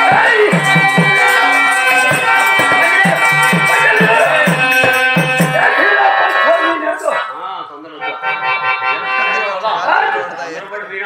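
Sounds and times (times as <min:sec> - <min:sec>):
harmonium holding notes: 0:00.0 - 0:10.7
man's amplified voice: 0:00.0 - 0:11.0.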